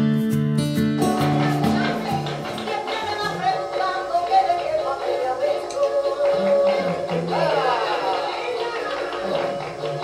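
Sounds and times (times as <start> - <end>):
flamenco music: 0.0 - 10.0.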